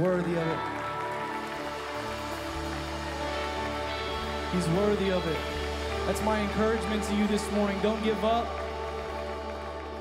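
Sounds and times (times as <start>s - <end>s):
held keyboard chords: 0.0s - 10.0s.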